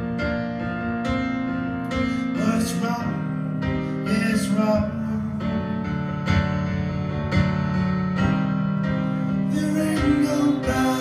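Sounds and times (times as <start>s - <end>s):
piano playing sustained chords: 0.0s - 11.0s.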